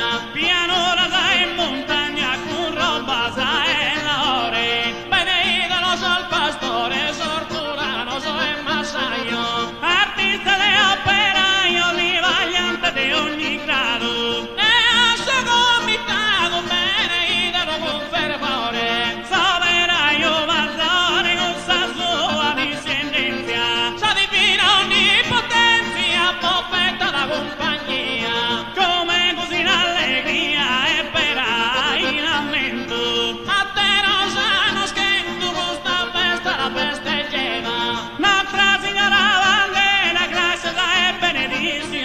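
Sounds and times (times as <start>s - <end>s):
accordion: 0.0s - 42.0s
acoustic guitar: 0.0s - 42.0s
man singing ornamented melody: 0.0s - 42.0s.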